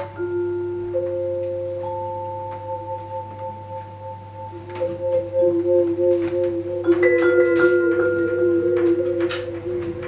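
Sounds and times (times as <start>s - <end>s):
vibraphone notes ringing: 0.0s - 10.0s.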